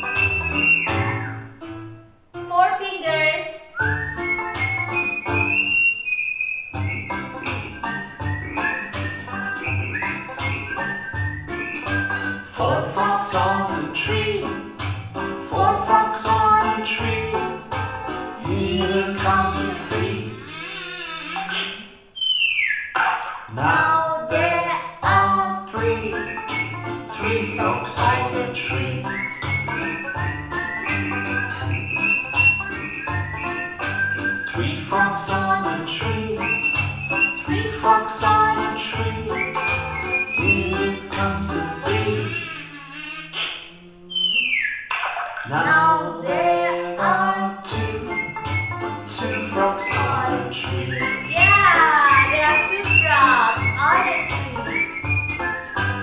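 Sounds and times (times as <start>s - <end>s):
falling whistle-like glide: 3.8s - 12.4s
children's song over a steady beat: 6.8s - 20.8s, 23.6s - 43.8s, 45.4s - 56.0s.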